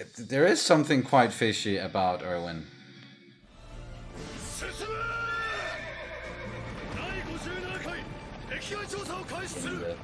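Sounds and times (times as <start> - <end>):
soundtrack music: 3.5 - 10.0.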